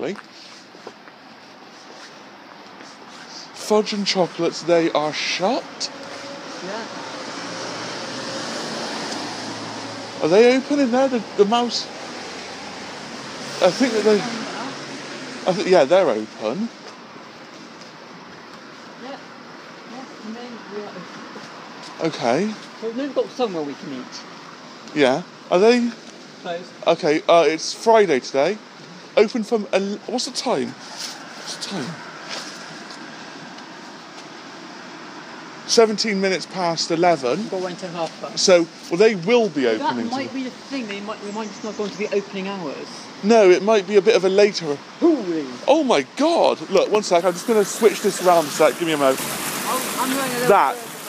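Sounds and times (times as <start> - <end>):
steady rushing outdoor noise: 0.0 - 51.0.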